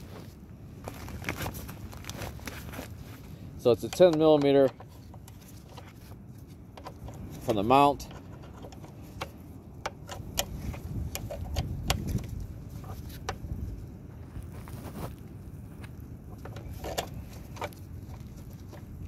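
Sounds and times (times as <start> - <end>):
wind rumble on microphone: 0.0 - 19.0
wrench metal clicks: 3.8 - 4.9.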